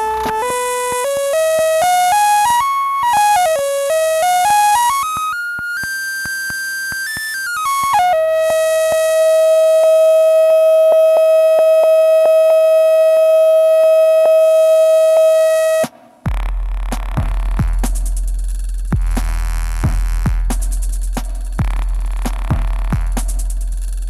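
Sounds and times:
electronic tones: 0:00.0 - 0:15.9
deep bass drone with crackle: 0:16.3 - 0:24.0.

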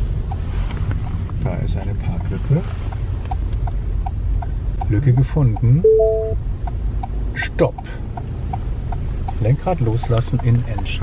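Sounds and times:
low hum of car rolling: 0:00.0 - 0:11.0
turn signal ticking: 0:00.0 - 0:11.0.

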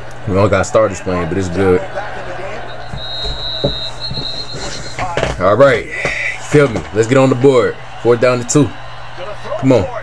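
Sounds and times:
broadcast background noise: 0:00.0 - 0:10.0
referee's whistle blast: 0:02.6 - 0:05.3.

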